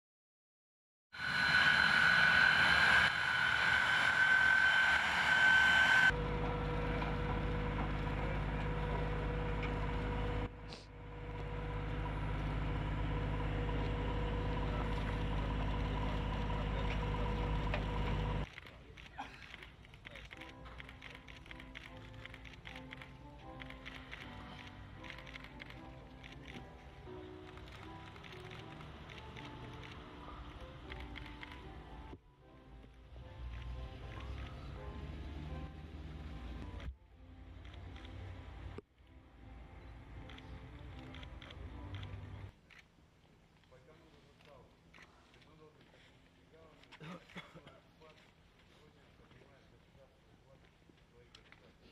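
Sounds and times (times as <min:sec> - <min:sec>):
jet engines running: 0:01.2 - 0:18.5.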